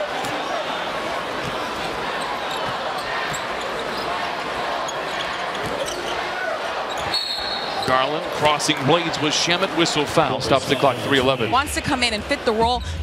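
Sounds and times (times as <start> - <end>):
crowd murmur: 0.0 - 13.0
sneakers squeaking: 0.1 - 8.4.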